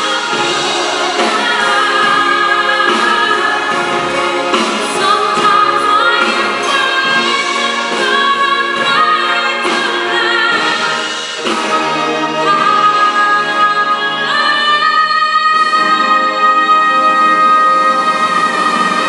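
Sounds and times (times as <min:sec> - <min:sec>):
orchestra with strings: 0:00.0 - 0:15.0
woman singing power ballad: 0:00.0 - 0:19.0.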